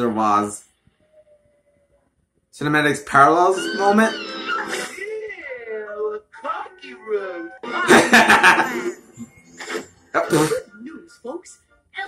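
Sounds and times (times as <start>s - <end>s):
cartoon voice sliding in pitch: 3.5s - 5.2s.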